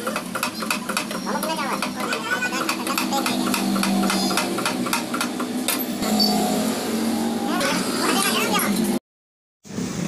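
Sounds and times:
steady machine hum: 0.0 - 9.0
voices: 0.9 - 4.6, 7.4 - 8.8.

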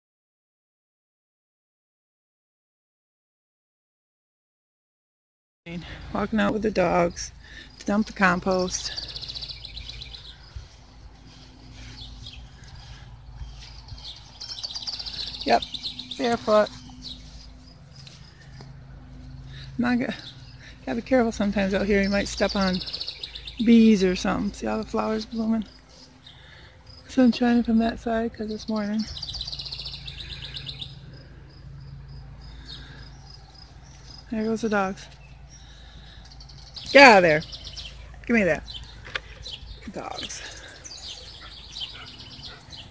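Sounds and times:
songbirds chirping: 5.7 - 42.9
high bird trill: 7.0 - 18.6, 21.7 - 27.2, 28.4 - 31.1, 31.9 - 42.9.

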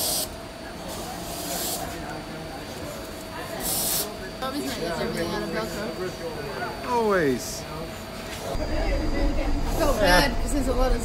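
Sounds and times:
low hum: 8.6 - 11.0.

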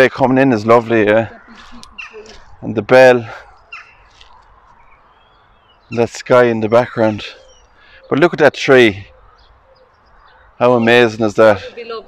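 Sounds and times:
man talking: 0.0 - 1.4, 2.5 - 3.5, 5.9 - 7.4, 8.0 - 9.1, 10.6 - 11.8
distant bird calls: 0.0 - 12.0.

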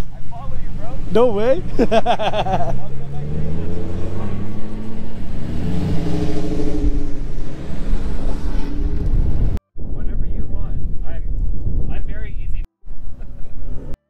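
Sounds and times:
voices: 0.0 - 7.7
vehicle engine running: 0.0 - 9.6.

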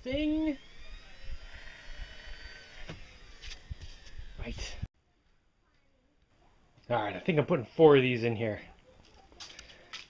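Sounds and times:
small electric motor whine: 0.0 - 4.9.

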